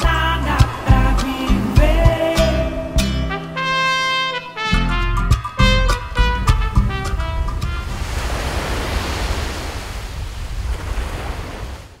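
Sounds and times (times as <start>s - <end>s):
waves on beach: 0.0s - 3.0s, 5.6s - 12.0s
wind: 0.0s - 12.0s
brass music: 2.6s - 8.2s.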